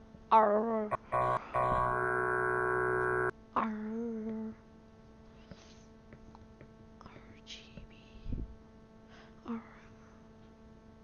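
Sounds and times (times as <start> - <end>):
electronic synthesizer tones: 0.9 - 3.3.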